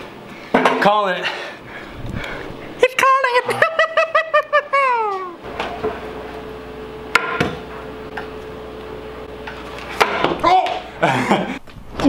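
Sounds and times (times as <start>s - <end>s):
faint steady hum: 0.0s - 11.9s
man laughing: 3.4s - 5.4s, 10.7s - 11.6s.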